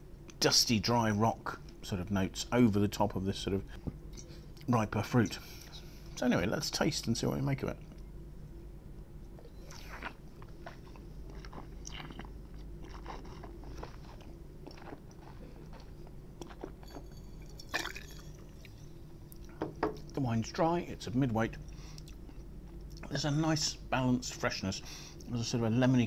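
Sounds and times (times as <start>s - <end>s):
low hum: 0.0s - 26.0s.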